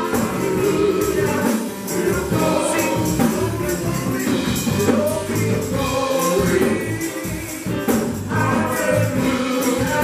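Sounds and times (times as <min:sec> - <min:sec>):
church band playing: 0:00.0 - 0:10.0
male lead singer: 0:00.0 - 0:10.0.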